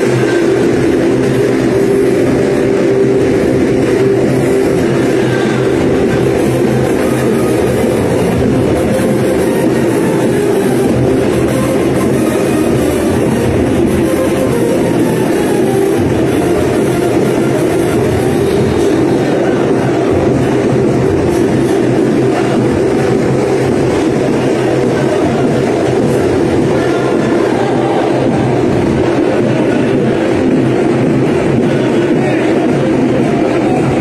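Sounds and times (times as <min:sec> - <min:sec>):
street rally din: 0:00.0 - 0:34.0.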